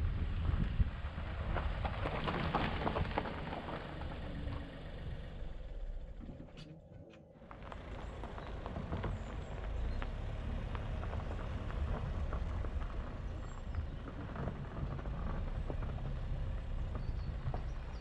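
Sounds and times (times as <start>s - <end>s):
car tyres and engine rumble: 0.0s - 18.0s
gravel crackling under tyres: 0.0s - 18.0s.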